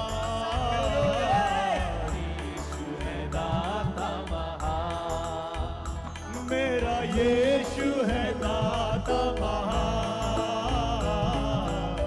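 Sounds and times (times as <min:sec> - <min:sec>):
bass: 0:00.0 - 0:12.0
keyboard: 0:00.0 - 0:12.0
men singing into microphones: 0:00.0 - 0:12.0
steady beat: 0:00.0 - 0:12.0.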